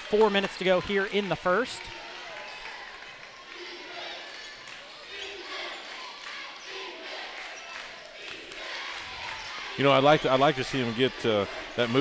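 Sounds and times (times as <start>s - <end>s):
crowd chatter: 0.0s - 12.0s
players' voices: 0.0s - 12.0s.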